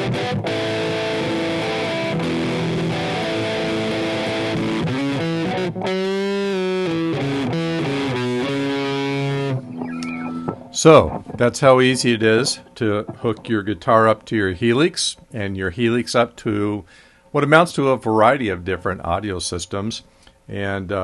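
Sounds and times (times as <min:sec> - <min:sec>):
electric guitar chords: 0:00.0 - 0:13.4.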